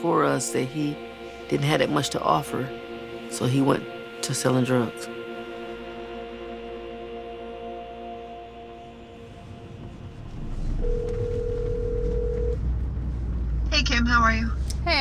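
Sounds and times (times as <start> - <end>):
sustained music chord: 0.0 - 12.8
car cabin low rumble: 8.6 - 15.0
phone ringing tone: 10.8 - 12.6.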